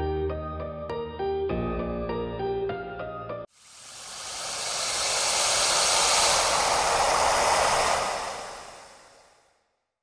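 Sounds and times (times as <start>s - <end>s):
long whoosh: 3.6s - 9.5s.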